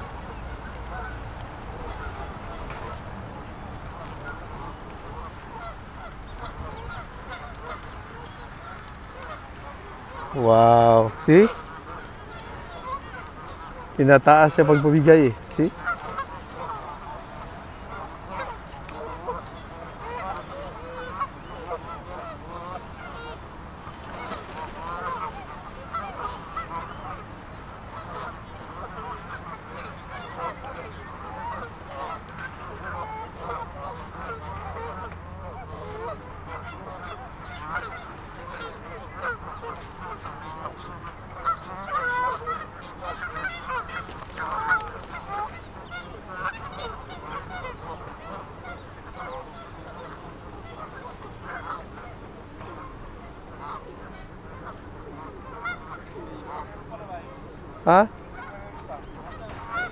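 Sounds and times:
geese honking: 0.0 - 59.9.

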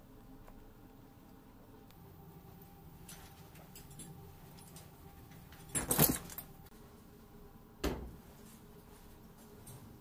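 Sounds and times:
metallic jangle and rattles: 5.5 - 6.6.

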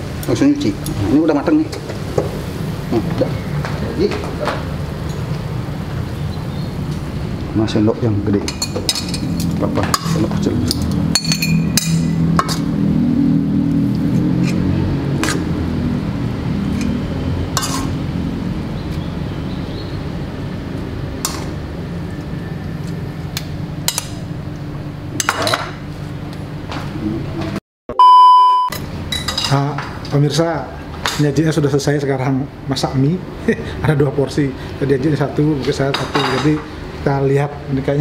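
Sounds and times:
steady low hum: 0.0 - 27.6
plates and utensils clinking: 8.4 - 12.6, 17.6 - 18.0, 35.9 - 36.7
loud steady beep: 27.9 - 28.8.

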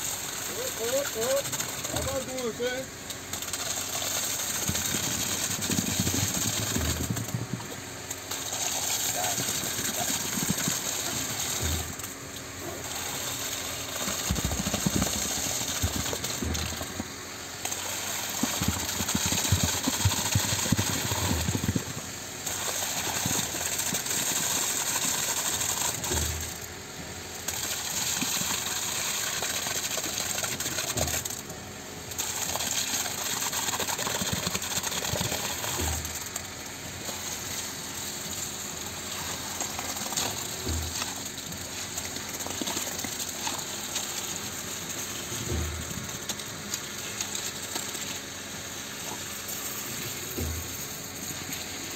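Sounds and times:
concrete pump running: 0.0 - 51.9.

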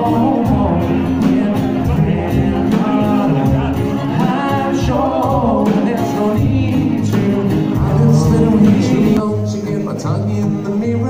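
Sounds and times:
drums: 0.0 - 9.6
acoustic guitar: 0.0 - 11.0
man singing: 0.0 - 11.0.

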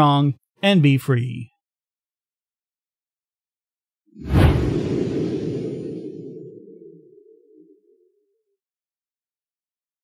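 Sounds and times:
whoosh with low rumble: 4.2 - 8.0.

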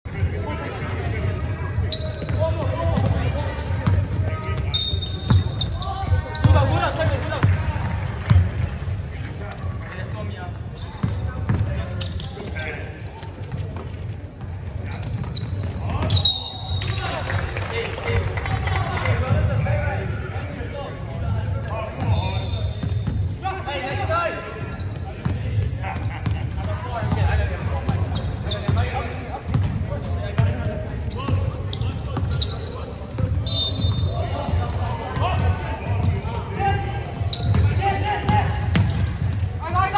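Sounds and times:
voices of players and spectators: 0.0 - 39.9
sneaker squeak: 1.7 - 6.9, 8.6 - 17.1, 21.9 - 23.4, 24.0 - 39.5
basketball bouncing on court floor: 11.0 - 12.2, 25.2 - 31.5, 37.1 - 39.6.

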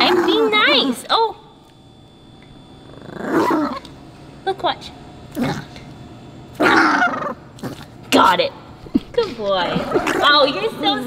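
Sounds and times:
puppy growling: 0.0 - 1.0, 2.8 - 3.9, 5.3 - 5.9, 6.6 - 8.2, 9.4 - 10.7.

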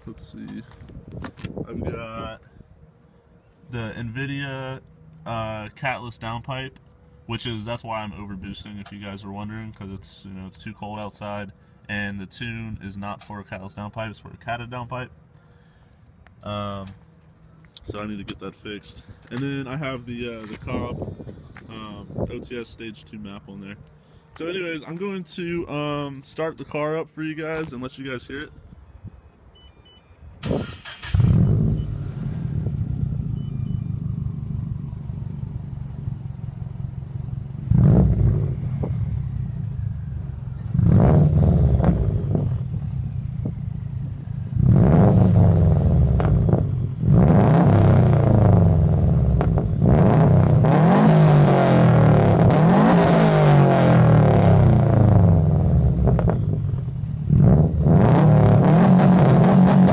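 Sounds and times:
car engine starting: 30.4 - 59.9
car engine revving: 30.6 - 59.9
car engine idling: 30.9 - 47.2, 53.7 - 58.5.

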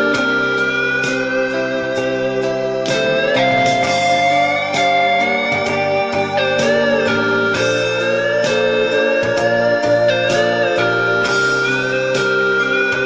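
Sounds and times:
chordal accompaniment: 0.0 - 13.0
lead guitar sustained bending notes: 0.0 - 13.0.

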